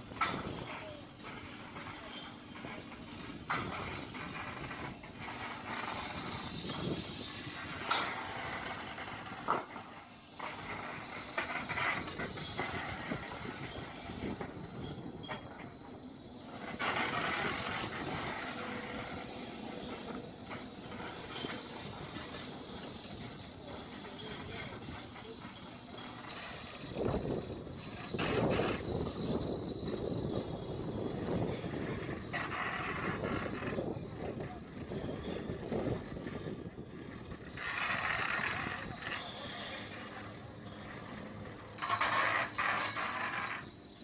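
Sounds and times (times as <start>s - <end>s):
outdoor background noise: 0.0s - 44.0s.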